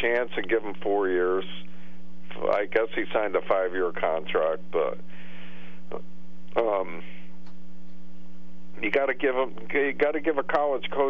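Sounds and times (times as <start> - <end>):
electrical mains hum: 0.0 - 11.0
person speaking: 2.3 - 5.0, 5.9 - 7.2.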